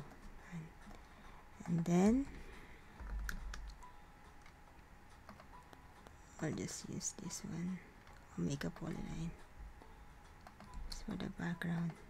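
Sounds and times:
computer keyboard typing: 0:03.0 - 0:07.4, 0:08.0 - 0:09.3, 0:10.3 - 0:12.0.

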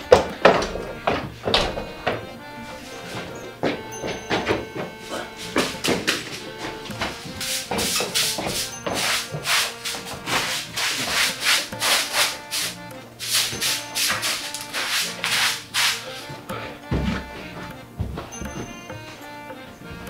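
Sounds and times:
broom sweeping: 0:07.2 - 0:16.3.

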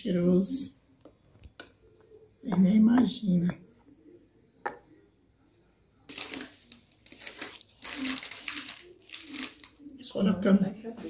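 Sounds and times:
plastic packet crinkling: 0:06.1 - 0:10.0.

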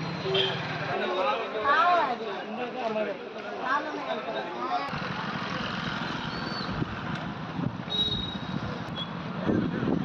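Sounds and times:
motor vehicles passing: 0:04.8 - 0:10.0.

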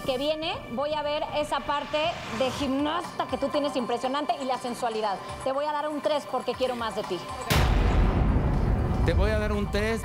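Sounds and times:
boom sound effect: 0:07.5 - 0:09.4.

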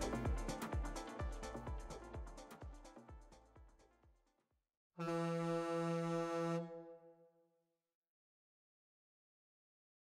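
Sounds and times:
low horn tone of interval timer: 0:05.0 - 0:07.2.

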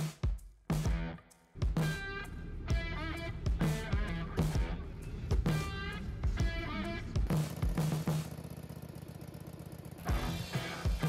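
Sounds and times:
engine idling: 0:01.6 - 0:11.0.

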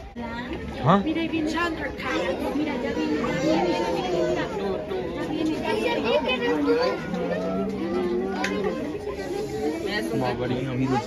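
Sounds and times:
chatter of overlapping voices: 0:00.0 - 0:11.0.

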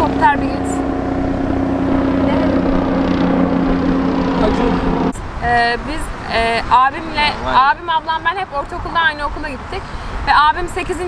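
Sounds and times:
helicopter flying overhead: 0:00.0 - 0:09.2.

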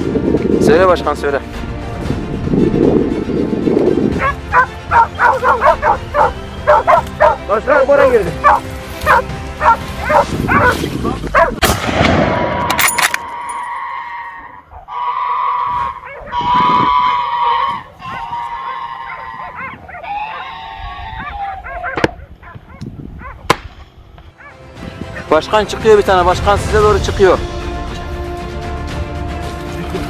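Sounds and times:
dogs baying and yelping: 0:04.2 - 0:07.4, 0:08.4 - 0:11.6, 0:13.4 - 0:23.5, 0:24.4 - 0:24.6
dogs howling: 0:04.2 - 0:07.4, 0:08.4 - 0:11.6, 0:13.5 - 0:23.4
sharp cracks: 0:23.5 - 0:23.9.

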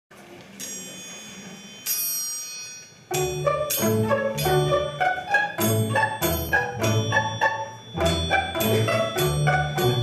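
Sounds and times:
cimbalom strings ringing: 0:00.6 - 0:10.0.

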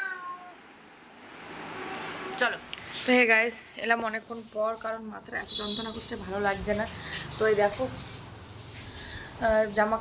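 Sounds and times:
cat meowing: 0:00.0 - 0:00.6.

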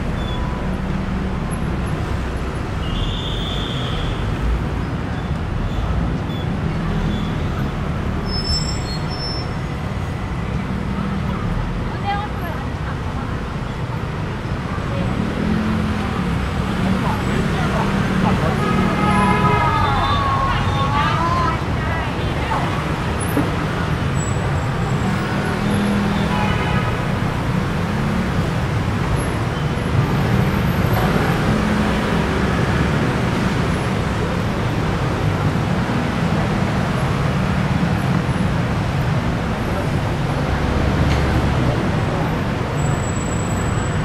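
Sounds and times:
low rumble of road traffic: 0:00.0 - 0:44.0
passers-by talking: 0:10.6 - 0:29.0, 0:30.0 - 0:44.0.

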